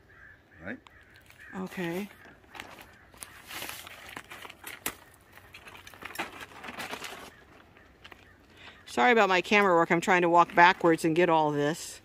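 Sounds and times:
plastic tarp rustling: 0:02.0 - 0:08.2.

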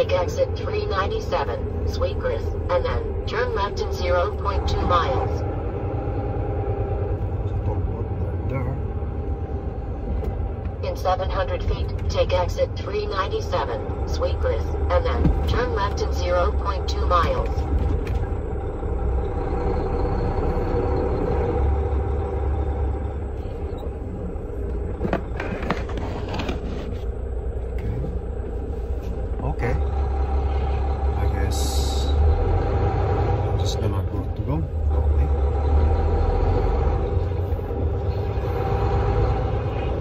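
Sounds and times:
truck engine low drone: 0:00.0 - 0:40.0.

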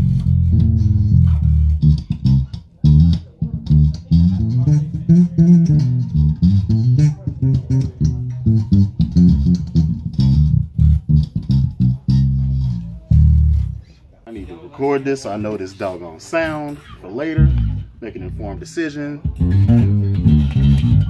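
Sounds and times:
plucked electric bass: 0:00.0 - 0:14.0, 0:16.4 - 0:21.0.

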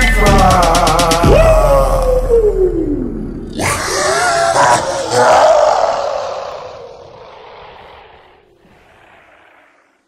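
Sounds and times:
man yelling with echo: 0:00.0 - 0:02.8.

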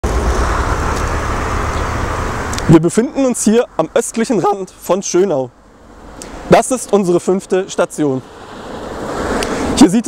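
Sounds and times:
deep outdoor rumble: 0:00.0 - 0:06.4.

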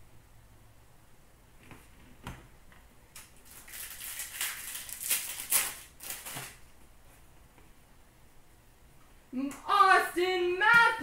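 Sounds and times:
wrapper crackling and rustling: 0:03.2 - 0:06.7.

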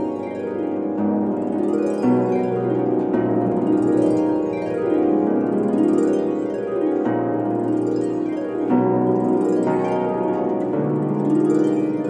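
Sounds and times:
harp playing arpeggios: 0:00.0 - 0:12.0.

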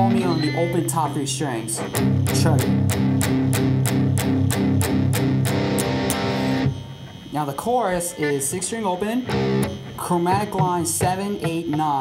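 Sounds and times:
electric guitar chord picked: 0:00.0 - 0:12.0.

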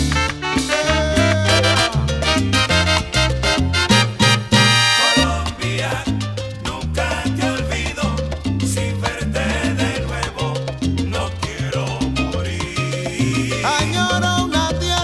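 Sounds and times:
melodic instrument lines: 0:00.0 - 0:05.8
steady percussion: 0:00.0 - 0:15.0
syncopated bass line: 0:00.0 - 0:15.0.

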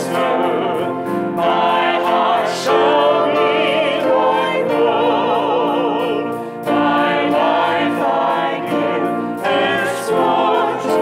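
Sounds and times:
choir singing: 0:00.0 - 0:11.0
musical accompaniment: 0:00.0 - 0:11.0.

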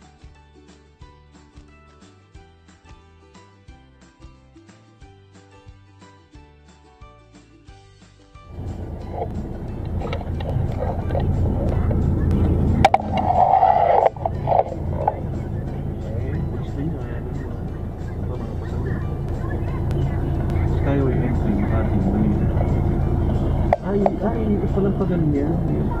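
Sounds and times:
car engine and road rumble: 0:08.5 - 0:26.0.

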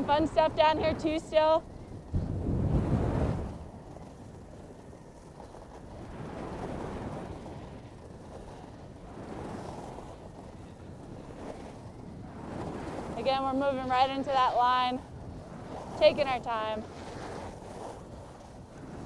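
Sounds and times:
skis scraping over snow: 0:00.0 - 0:19.0
wind buffeting microphone: 0:00.0 - 0:19.0.

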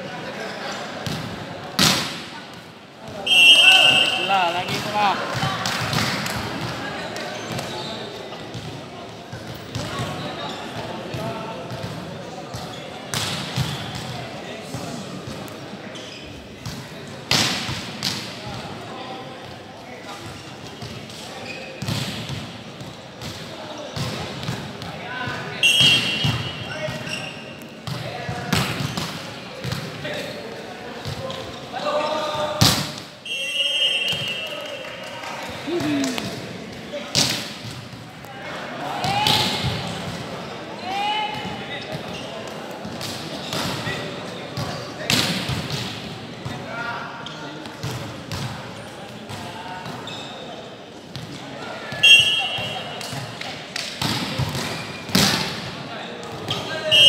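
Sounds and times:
volleyball slaps and thuds: 0:01.0 - 0:02.3, 0:05.4 - 0:06.8, 0:32.6 - 0:33.1, 0:52.6 - 0:55.6
players shouting: 0:03.2 - 0:05.4, 0:52.0 - 0:53.0.

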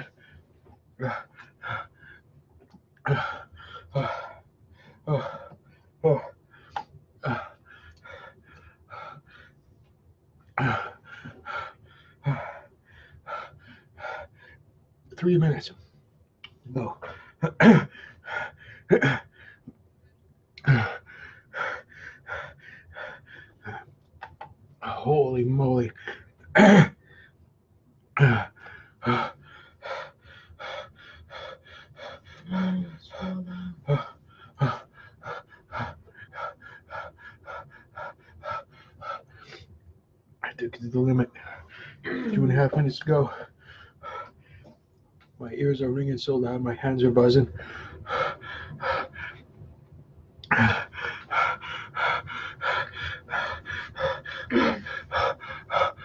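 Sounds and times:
man panting through the mouth: 0:03.0 - 0:09.6, 0:20.6 - 0:23.9, 0:28.2 - 0:39.7, 0:47.5 - 0:49.5, 0:50.4 - 0:56.0
man gasping: 0:20.6 - 0:23.9, 0:50.4 - 0:56.0.

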